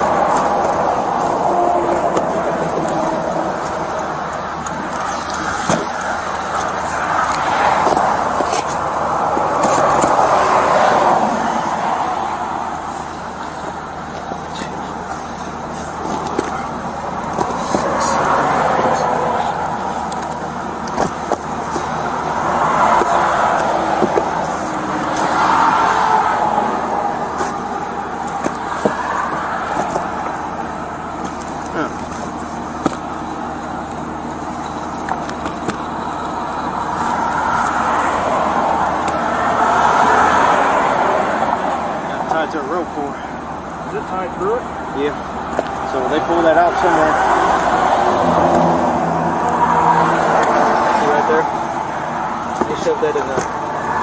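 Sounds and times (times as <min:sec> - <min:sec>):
cardboard boxes rustling: 0:00.0 - 0:11.1, 0:12.8 - 0:39.4
cars passing: 0:00.0 - 0:54.0.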